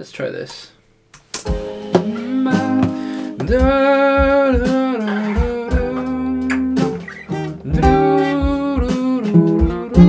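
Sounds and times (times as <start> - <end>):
acoustic guitar strumming: 1.5 - 10.0.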